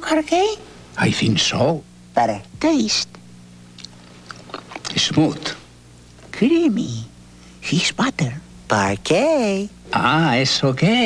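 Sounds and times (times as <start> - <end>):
faint steady hum: 0.0 - 11.0
lip smacks and mouth clicks: 3.7 - 5.0.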